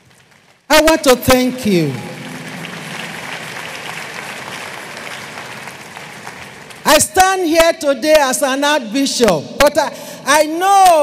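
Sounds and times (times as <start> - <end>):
crowd applauding: 0.0 - 7.0.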